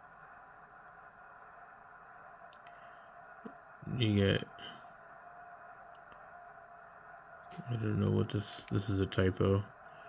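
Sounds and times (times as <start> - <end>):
low background hiss: 0.0 - 10.0.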